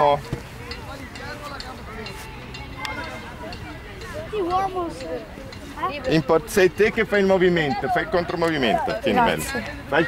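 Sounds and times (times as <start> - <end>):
children chattering: 0.5 - 10.0.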